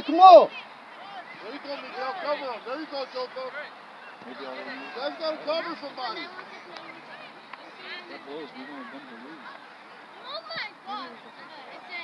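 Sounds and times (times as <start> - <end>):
distant people talking and calling: 0.0 - 12.0.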